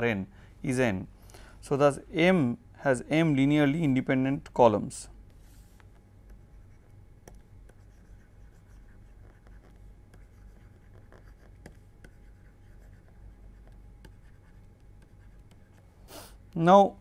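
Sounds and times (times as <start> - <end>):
low steady hum: 0.0 - 17.0
stylus scratching on tablet: 5.4 - 15.9.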